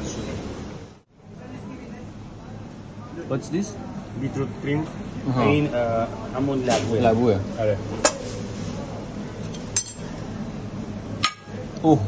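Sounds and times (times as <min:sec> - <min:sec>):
steady low hum: 0:00.0 - 0:12.0
metal spoon clinking on kitchenware: 0:09.5 - 0:10.1.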